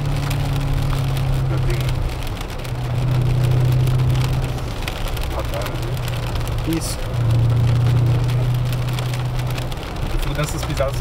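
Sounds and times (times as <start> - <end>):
car engine droning under throttle: 0.0 - 11.0
rain pattering on car: 0.0 - 11.0.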